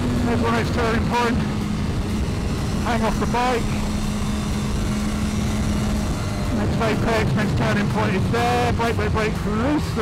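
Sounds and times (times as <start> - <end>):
wind noise on microphone: 0.0 - 8.8
motorcycle engine running: 0.0 - 10.0.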